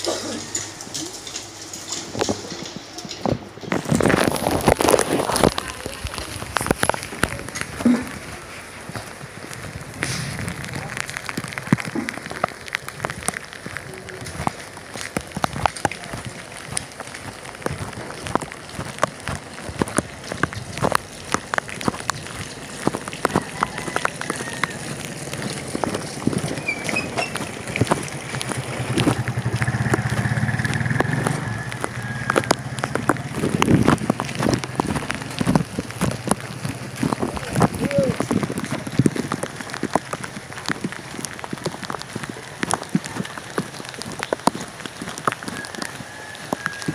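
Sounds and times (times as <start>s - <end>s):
raindrops tapping close by: 0.0s - 46.9s
steady rain falling: 0.0s - 46.9s.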